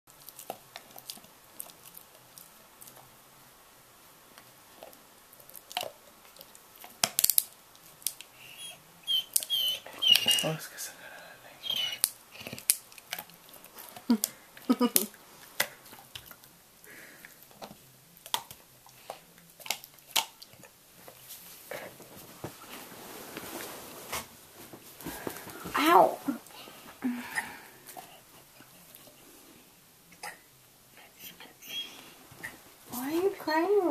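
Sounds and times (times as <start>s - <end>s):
puppy teeth crunching on bone: 4.8s - 8.3s, 11.6s - 16.6s, 17.4s - 21.2s
dog whining: 8.4s - 10.6s, 11.6s - 12.6s, 31.2s - 32.6s
puppy whimpering: 8.4s - 10.6s, 11.6s - 12.6s, 31.2s - 32.6s.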